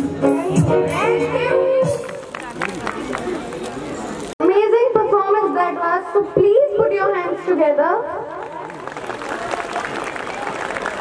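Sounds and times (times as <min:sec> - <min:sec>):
audience applauding: 0:02.2 - 0:03.9, 0:08.3 - 0:11.0.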